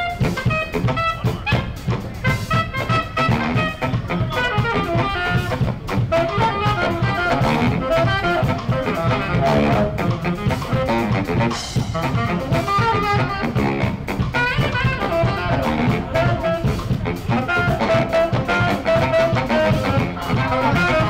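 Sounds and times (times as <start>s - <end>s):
band playing up-tempo jazz: 0.0s - 21.0s
brass and saxophone: 0.0s - 21.0s
drum kit: 0.0s - 21.0s.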